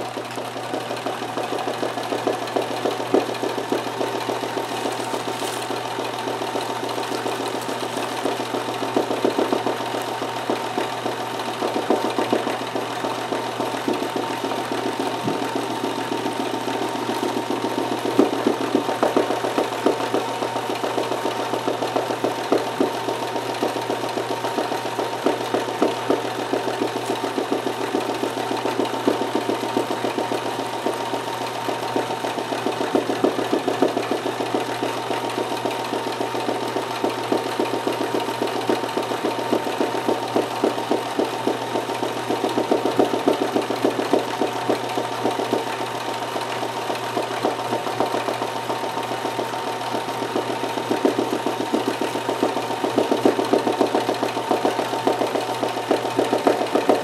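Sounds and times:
sewing machine motor hum: 0.0 - 57.0
sewing machine needle patter: 0.0 - 57.0.

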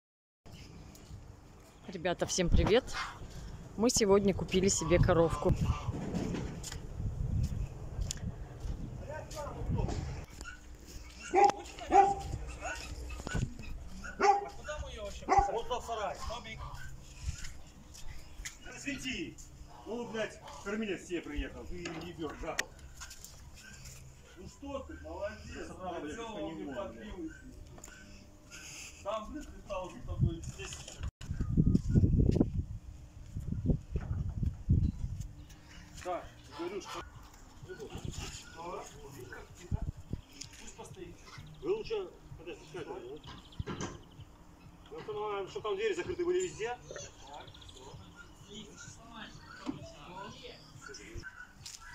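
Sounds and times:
dog barking: 10.3 - 17.0, 47.8 - 49.8, 50.8 - 51.9.

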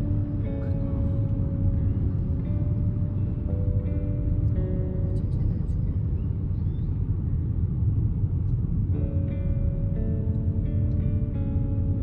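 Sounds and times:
car interior road rumble: 0.0 - 12.0.

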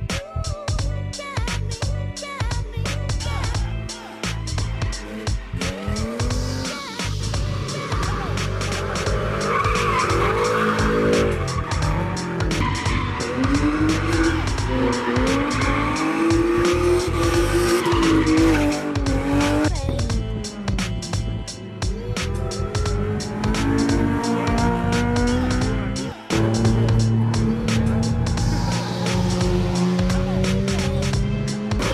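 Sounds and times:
music with a beat: 0.0 - 31.9
car engine revving: 4.4 - 31.9
tyres squealing: 7.6 - 19.5.

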